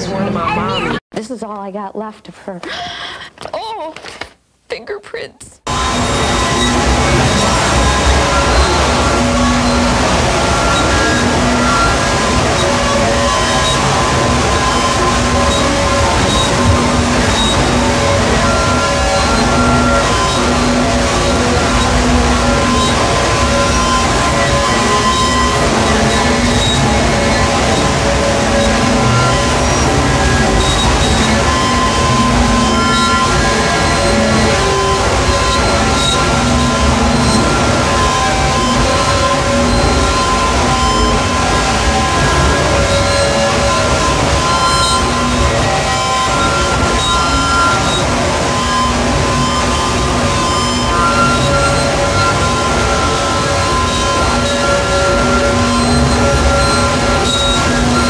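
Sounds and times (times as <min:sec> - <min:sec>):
dense wall of noise: 0:05.6 - 0:58.0
droning tones: 0:05.6 - 0:58.0.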